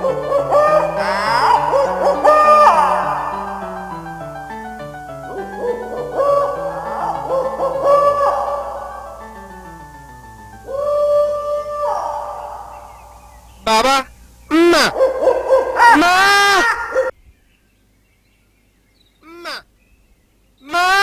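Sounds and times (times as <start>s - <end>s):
owl-like hooting calls: 0.0s - 4.3s, 5.3s - 17.1s
held musical note: 0.0s - 12.5s.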